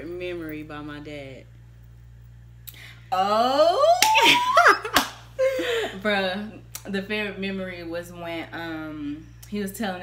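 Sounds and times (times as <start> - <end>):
sharp slap: 4.9 - 5.2.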